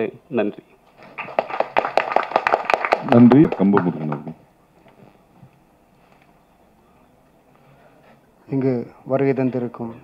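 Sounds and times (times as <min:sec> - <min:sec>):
audience applauding: 0:01.0 - 0:04.4.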